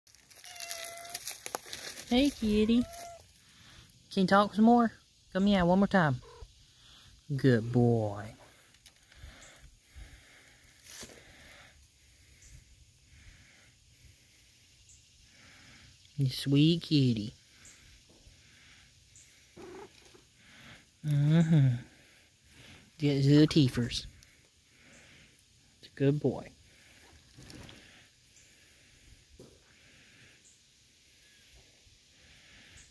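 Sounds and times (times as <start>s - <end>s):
crackling rustles and clicks: 0.1s - 3.3s
cat meowing: 0.4s - 1.2s, 2.6s - 3.2s, 19.6s - 19.9s
cat purring: 6.2s - 6.5s, 19.6s - 20.2s.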